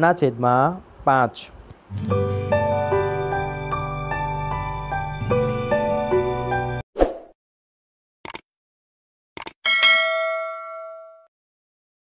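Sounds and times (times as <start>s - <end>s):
notification bell ding: 9.7s - 11.3s.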